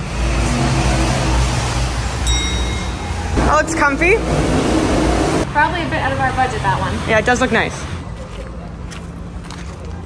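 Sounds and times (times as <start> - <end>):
traffic rumble: 0.0 - 10.0
bell-like ding: 2.2 - 3.5.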